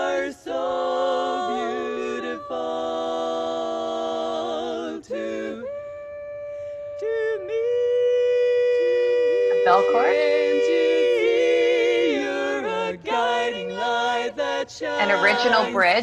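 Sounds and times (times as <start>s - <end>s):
women singing a cappella: 0.0s - 7.6s, 8.7s - 16.0s.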